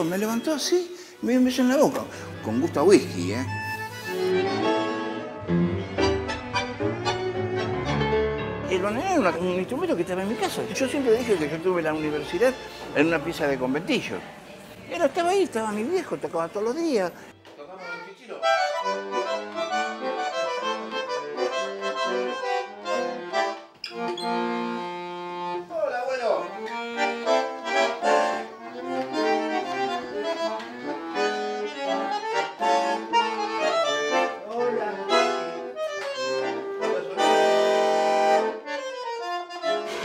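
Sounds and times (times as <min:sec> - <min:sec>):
bandoneon playing chords: 0:00.0 - 0:14.3, 0:18.4 - 0:40.0.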